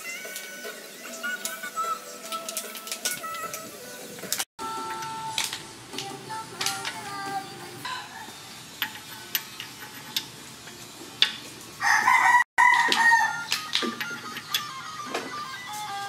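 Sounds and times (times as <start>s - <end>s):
rooster crowing: 11.8s - 13.5s.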